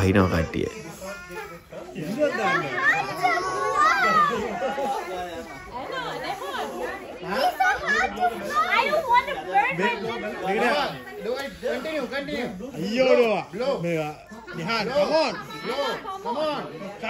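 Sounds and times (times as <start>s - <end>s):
children shouting and calling: 0.0s - 13.4s, 14.1s - 17.0s.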